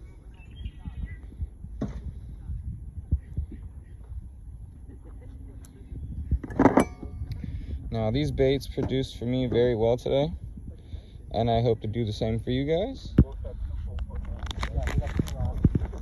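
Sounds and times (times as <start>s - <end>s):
microphone handling rumble: 0.0s - 16.0s.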